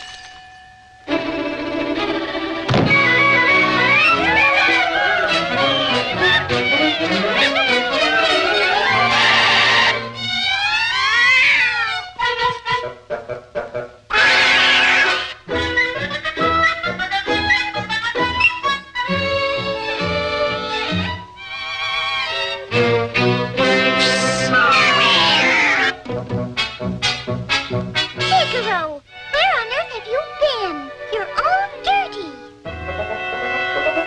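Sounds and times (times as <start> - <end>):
orchestral music: 1.1 - 10.4, 15.4 - 34.0
cartoon cats yowling: 3.8 - 12.2, 14.1 - 15.4, 23.7 - 26.0
cartoon cat yowl: 10.5 - 12.2, 14.1 - 15.3, 23.8 - 26.0.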